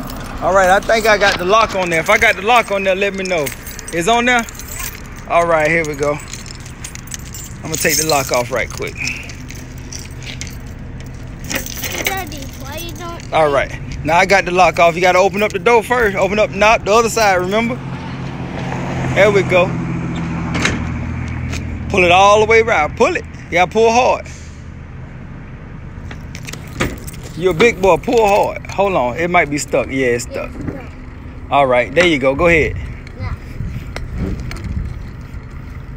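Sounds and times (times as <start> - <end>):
keys jangling: 0.0 - 14.0, 26.1 - 28.6.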